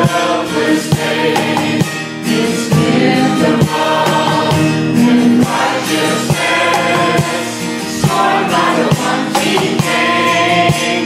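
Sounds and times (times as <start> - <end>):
acoustic guitar: 0.0 - 11.0
women singing worship song: 0.0 - 11.0.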